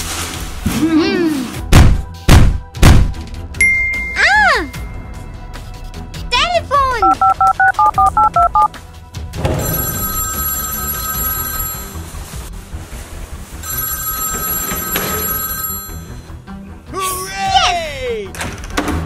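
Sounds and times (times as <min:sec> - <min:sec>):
keypad dialling beeps: 0:07.0 - 0:08.7
phone line ringing: 0:07.0 - 0:08.7, 0:09.5 - 0:12.1, 0:13.6 - 0:16.3.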